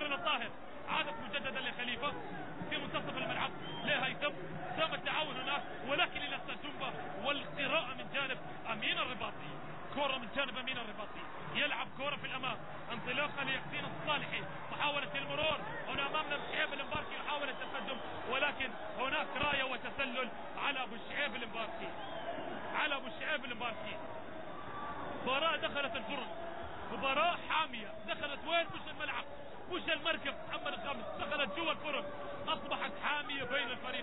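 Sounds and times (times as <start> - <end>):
man commentating: 0.0 - 24.0, 25.2 - 34.0
stadium crowd noise: 0.0 - 34.0.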